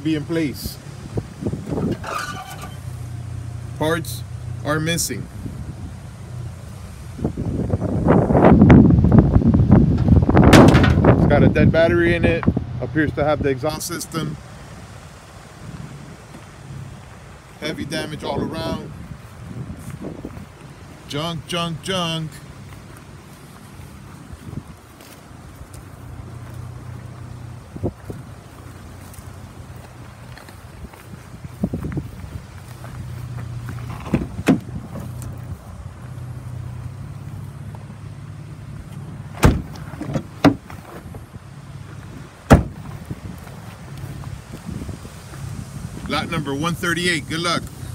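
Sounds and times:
wind rumble on microphone: 0.0 - 21.3, 22.3 - 47.9
steady outdoor hiss: 0.0 - 47.9
sharp knocks and thumps: 9.9 - 11.2, 33.8 - 35.1, 39.4 - 41.1, 42.5 - 42.9.

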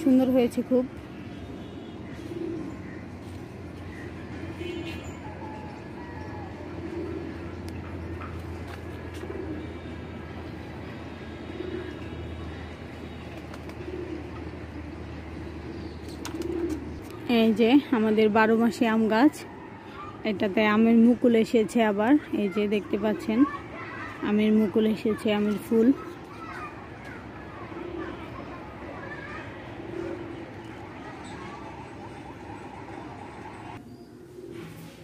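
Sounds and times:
pigeons cooing: 2.0 - 4.2, 5.2 - 12.8, 13.4 - 17.0, 24.7 - 35.0.

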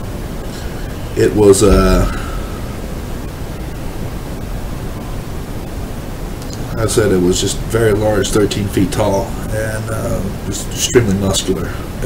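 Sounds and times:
microphone background hiss: 0.0 - 12.0.

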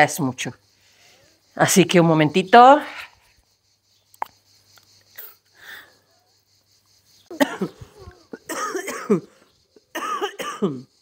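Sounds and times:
woman coughing: 7.3 - 9.3, 9.9 - 10.9.

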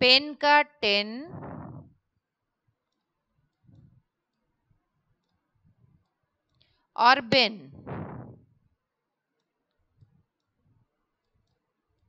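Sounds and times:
person speaking: 0.0 - 1.9, 7.0 - 8.4.

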